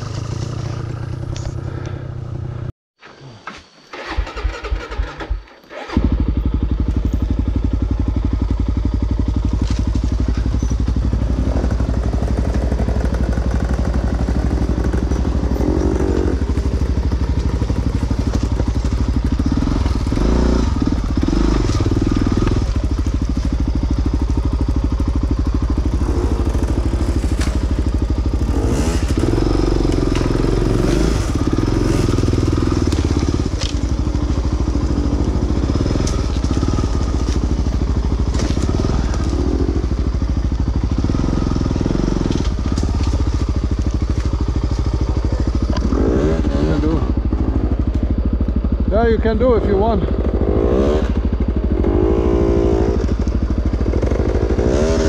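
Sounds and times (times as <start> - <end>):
dirt bike engine starting: 3.4 - 47.9, 48.8 - 55.0.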